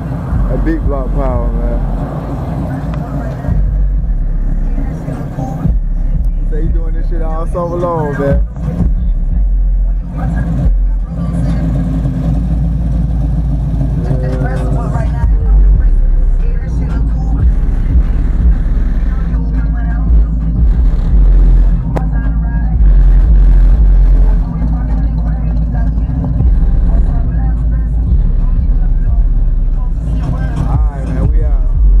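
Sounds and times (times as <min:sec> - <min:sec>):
car engine exhaust rumble: 0:00.0 - 0:32.0.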